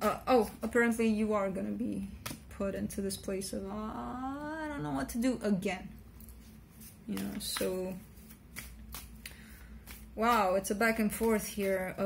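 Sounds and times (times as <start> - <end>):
cards flicking and rustling: 6.3 - 12.0.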